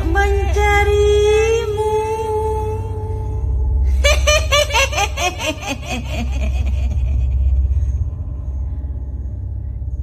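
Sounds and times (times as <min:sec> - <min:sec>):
deep rumbling drone: 0:00.0 - 0:10.0
ghostly cackling laugh: 0:03.9 - 0:08.0.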